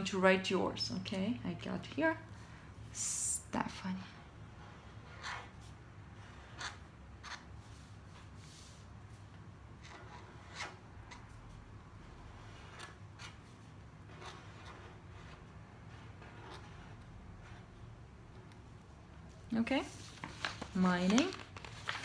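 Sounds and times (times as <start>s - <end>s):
felt-tip pen scratching on paper: 4.6s - 7.5s, 14.1s - 17.8s.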